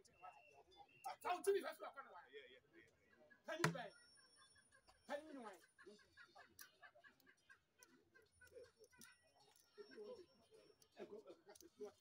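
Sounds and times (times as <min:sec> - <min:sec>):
game piece tapping wooden board: 0:03.6 - 0:03.8.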